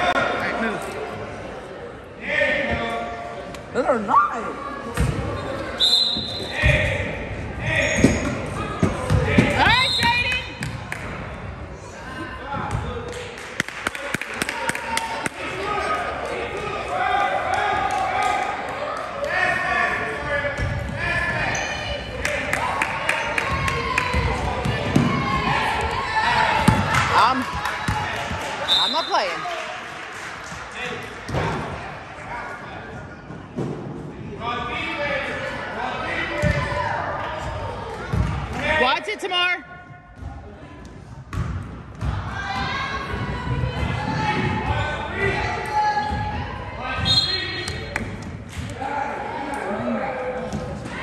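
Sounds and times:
sneakers squeaking: 4.9s - 7.0s, 7.6s - 10.8s, 20.6s - 22.1s.

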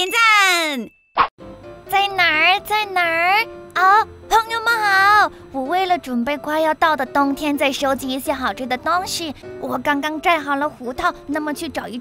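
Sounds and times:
light children's music: 1.4s - 12.0s.

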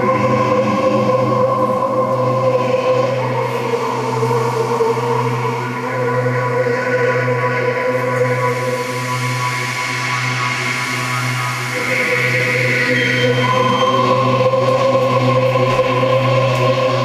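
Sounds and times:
ambient electronic drone music: 0.0s - 17.0s.

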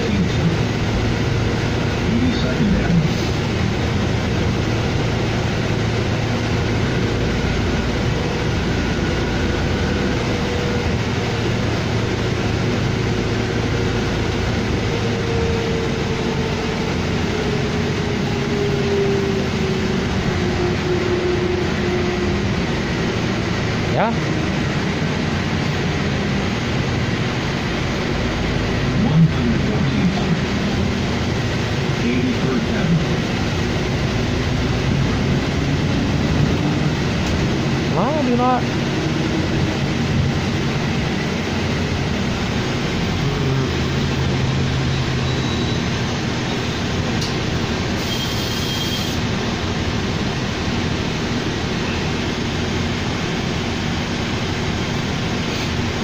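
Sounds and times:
bus engine and road rumble: 0.0s - 56.0s.

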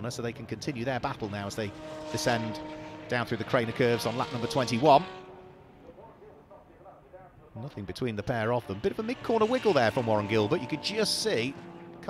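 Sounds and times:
faint race car engines: 0.0s - 12.0s.

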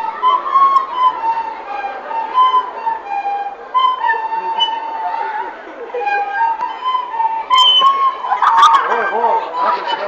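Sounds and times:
flutes playing a melody: 0.0s - 10.0s
voices chattering: 0.0s - 10.0s.

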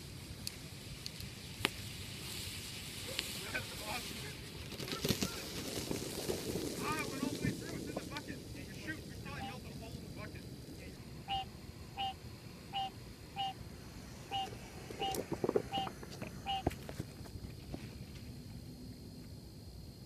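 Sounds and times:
thermite hissing and crackling: 0.0s - 20.0s.

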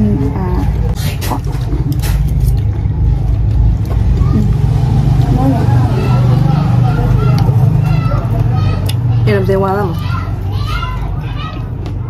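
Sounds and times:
loud low rumble: 1.7s - 7.9s.

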